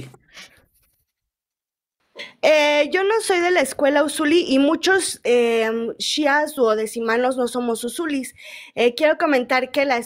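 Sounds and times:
man speaking: 0.0s - 0.2s.

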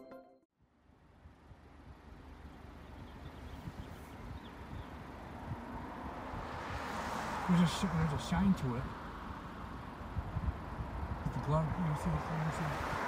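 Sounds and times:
road traffic hiss: 0.7s - 13.0s
wind rumbling on microphone: 1.2s - 7.0s, 9.4s - 13.0s.

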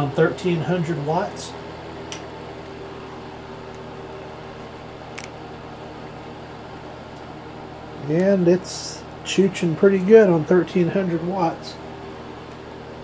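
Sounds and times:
space heater fan humming: 0.0s - 13.0s
heater clicks: 1.2s - 2.8s, 3.6s - 4.0s, 5.0s - 5.5s, 7.0s - 11.3s, 12.4s - 12.7s.

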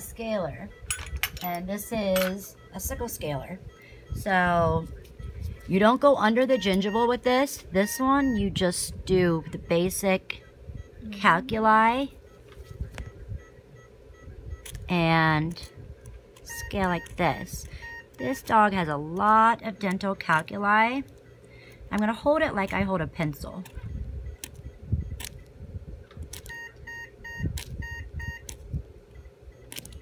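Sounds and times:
steady low hum: 0.0s - 30.0s
short electronic beeps: 0.4s - 8.6s, 16.5s - 18.6s, 26.5s - 28.4s
sharp clicks: 23.6s - 24.6s, 25.2s - 25.5s, 29.7s - 30.0s.

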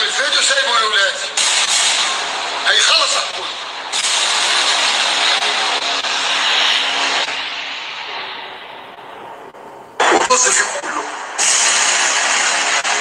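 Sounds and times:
loud steady rushing noise: 0.0s - 13.0s
faint hum: 6.2s - 11.4s.

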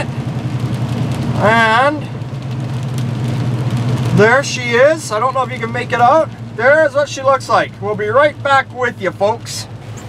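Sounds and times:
hiss of tyres and rain: 0.0s - 10.0s.

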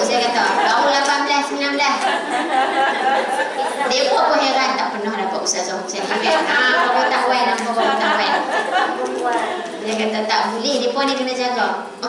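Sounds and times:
several voices talking: 3.1s - 12.0s.

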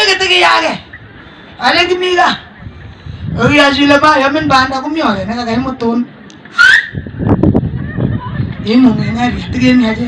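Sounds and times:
high-pitched rising cry: 6.5s - 7.0s.

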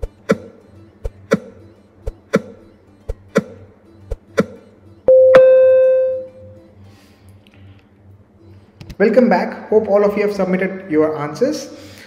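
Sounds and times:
short bright ring: 5.1s - 6.6s
loud steady timer tone: 5.1s - 6.7s.

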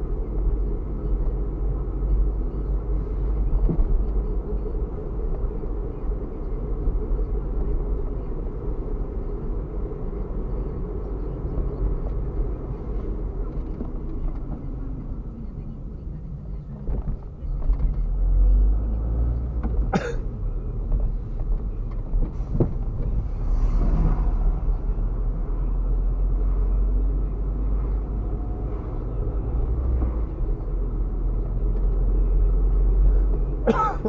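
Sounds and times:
car engine rumble: 0.0s - 34.0s
tyre noise on road: 0.0s - 34.0s.

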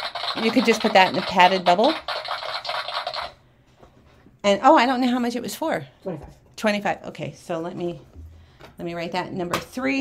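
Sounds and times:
scratchy rustling of handled objects: 0.0s - 4.4s.

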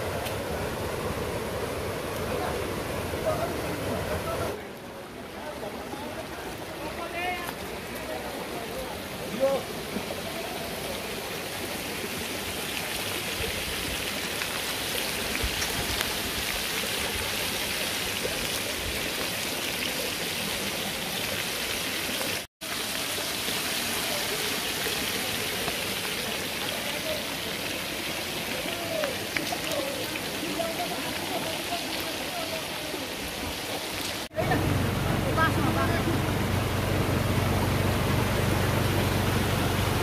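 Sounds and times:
stream rushing over stones: 0.0s - 40.0s.

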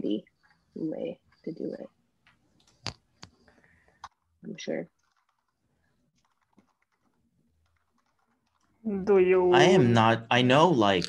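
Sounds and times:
typing on a computer keyboard: 4.9s - 8.8s.

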